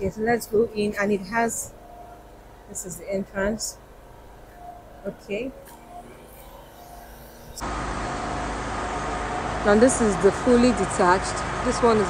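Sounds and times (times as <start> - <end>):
faint hum: 0.0 - 11.7
steady background noise: 0.0 - 12.0.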